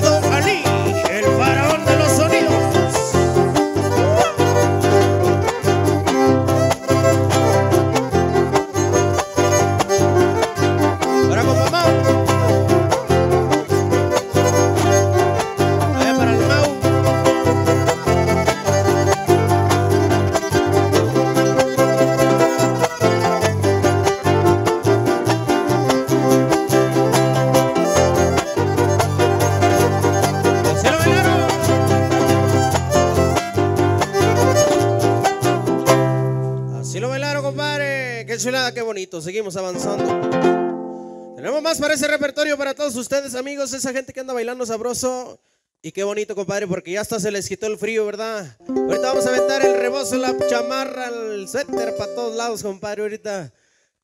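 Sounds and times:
fast strummed strings: 0.0s - 36.4s, 39.8s - 41.4s, 48.7s - 52.6s
violin melody: 0.0s - 38.7s, 39.8s - 41.4s, 48.6s - 52.6s
bass line: 0.0s - 38.8s, 48.6s - 52.6s.

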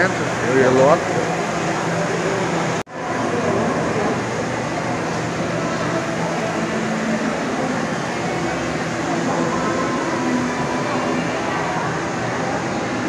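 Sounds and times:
echoing hall noise: 0.0s - 13.0s
indistinct voices: 0.0s - 13.0s.

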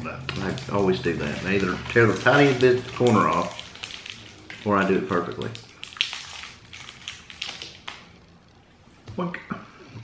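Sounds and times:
wrapper crinkling and tearing: 0.3s - 8.2s.

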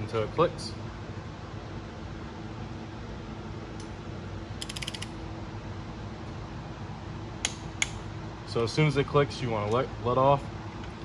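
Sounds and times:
steady low hum: 0.0s - 11.0s
sharp torque wrench clicks: 4.6s - 5.1s
torque wrench ratchet clicks: 4.6s - 5.1s.

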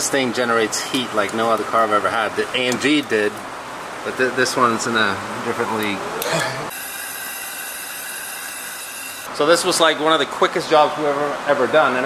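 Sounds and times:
workshop background hum: 0.0s - 12.0s
high whining tones: 6.7s - 9.3s.

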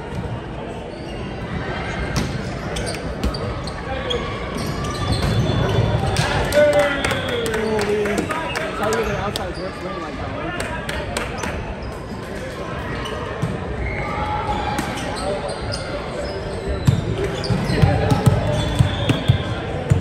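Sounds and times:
players' voices: 0.0s - 20.0s.

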